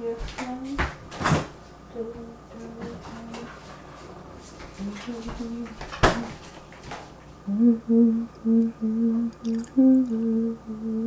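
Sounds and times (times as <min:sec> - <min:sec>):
person humming: 0:07.4 - 0:11.0.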